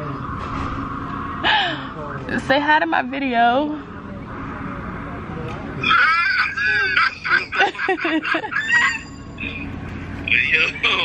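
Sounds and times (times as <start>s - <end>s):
woman laughing: 5.9s - 9.2s.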